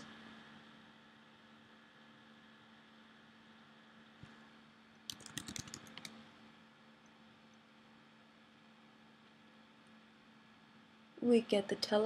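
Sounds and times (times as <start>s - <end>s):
faint steady hum: 0.0s - 12.0s
computer keyboard typing: 5.1s - 6.2s.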